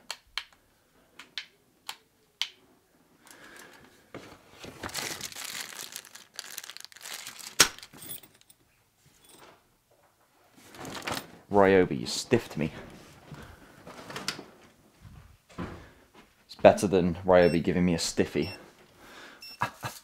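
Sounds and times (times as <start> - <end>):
packaging rustling and crinkling: 3.3 - 8.4, 10.6 - 11.5.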